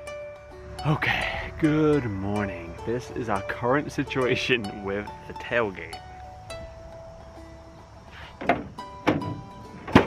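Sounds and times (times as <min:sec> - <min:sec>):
music with plucked notes: 0:00.0 - 0:10.0
tailgate clunks: 0:08.2 - 0:10.0
tailgate banging open: 0:08.3 - 0:10.0.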